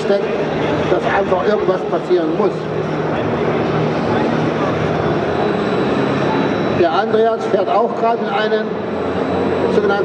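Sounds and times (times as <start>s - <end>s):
crowd chatter: 0.0s - 10.0s
low hum: 0.0s - 10.0s.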